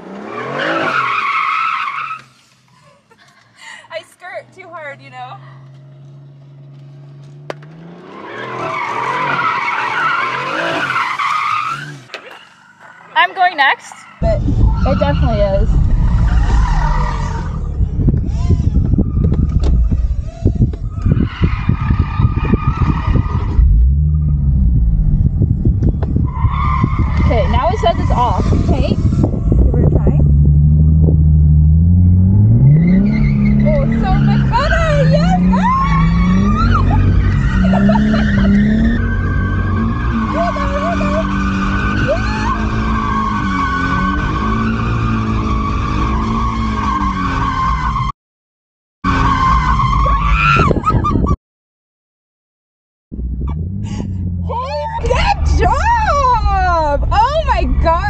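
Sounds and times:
car engine revving: 4.1 - 48.1, 53.2 - 58.0
tyres squealing: 32.7 - 48.0.

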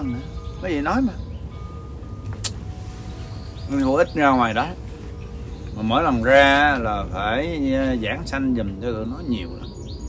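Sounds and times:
sharp click: 2.3 - 2.6.

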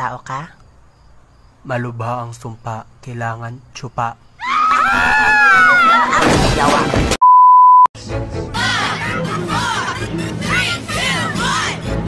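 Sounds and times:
test-tone beep: 7.2 - 7.9
music: 8.0 - 12.0.

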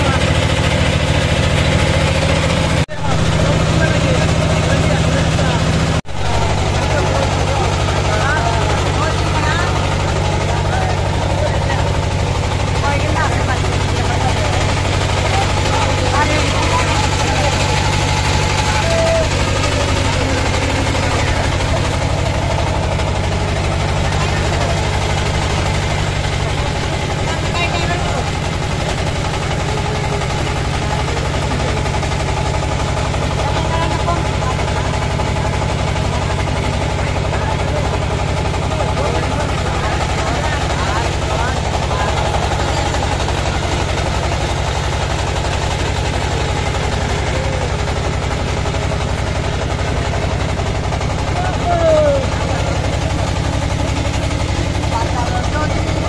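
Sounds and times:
boat engine droning: 0.0 - 56.0.

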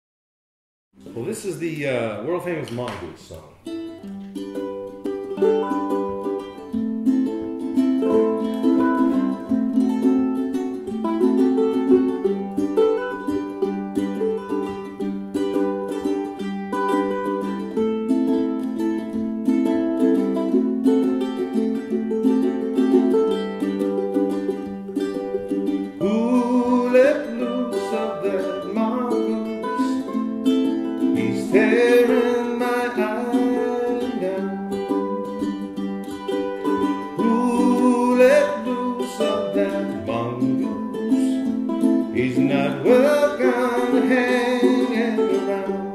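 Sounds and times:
ukuleles strumming: 1.0 - 45.9
picked ukulele melody: 2.6 - 45.9.

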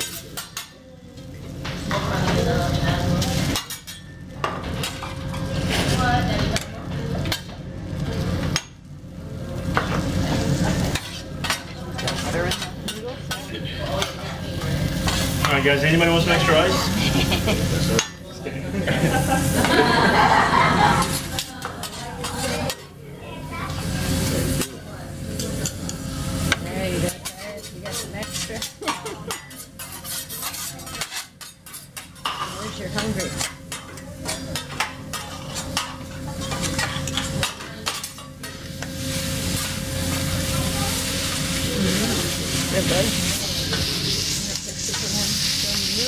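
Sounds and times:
metal spatulas scraping griddle: 0.0 - 0.8, 1.7 - 7.6, 9.7 - 18.2, 18.8 - 23.0, 25.4 - 46.0
food sizzling: 0.0 - 46.0
spatulas tossing food: 26.6 - 46.0.

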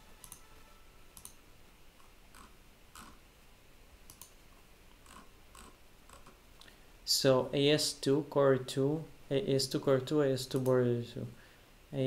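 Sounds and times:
mouse and keyboard clicks: 0.2 - 0.4, 1.2 - 1.4, 4.1 - 4.4.

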